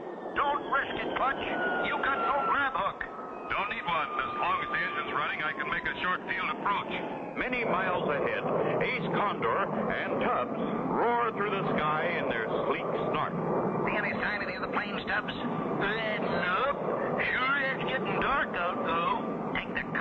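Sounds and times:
jet aircraft engine drone: 0.0s - 20.0s
men talking: 0.4s - 20.0s.

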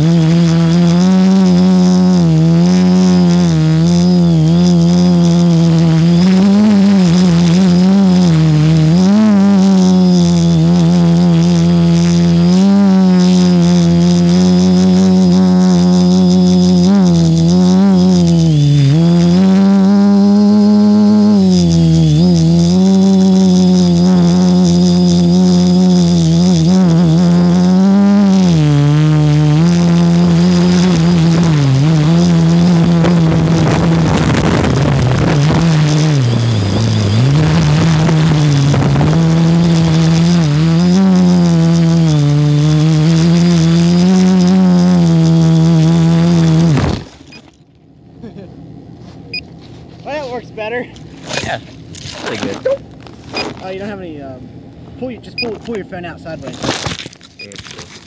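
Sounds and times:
quadcopter propellers humming: 0.0s - 57.6s.

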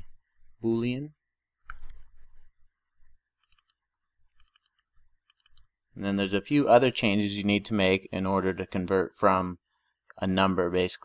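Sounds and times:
typing on computer keyboard: 1.6s - 2.1s, 3.4s - 5.7s.

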